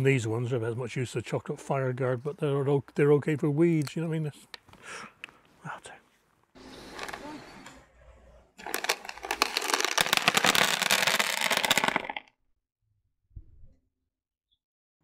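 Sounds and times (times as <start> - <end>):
beans rattling onto sheet: 8.6 - 12.2.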